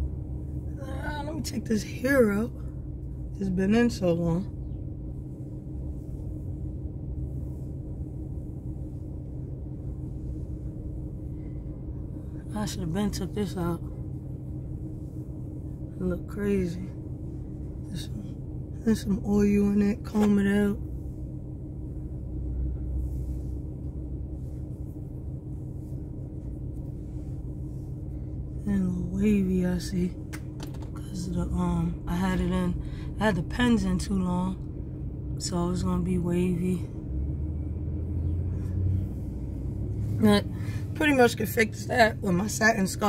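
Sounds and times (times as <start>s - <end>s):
low rumble and hum in van: 0.0s - 43.0s.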